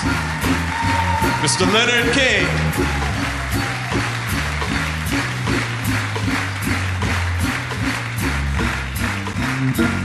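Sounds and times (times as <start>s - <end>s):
drum kit cymbal beat: 0.0s - 10.0s
organ bass line: 0.0s - 10.0s.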